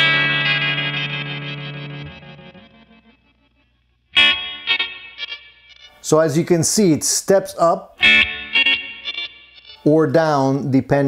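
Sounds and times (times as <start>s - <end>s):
electric guitar note with delay echoes: 0.0s - 6.0s, 8.0s - 9.9s.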